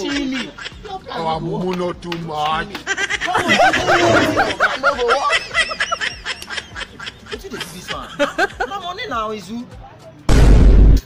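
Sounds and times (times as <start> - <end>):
man laughing: 0.0 - 1.2, 2.8 - 8.8.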